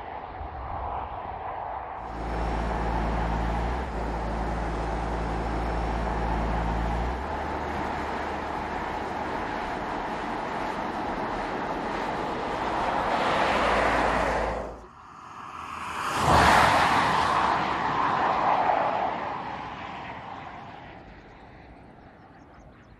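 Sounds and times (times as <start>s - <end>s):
car pass-by whoosh: 1.8s - 21.1s
low drone: 2.0s - 15.6s.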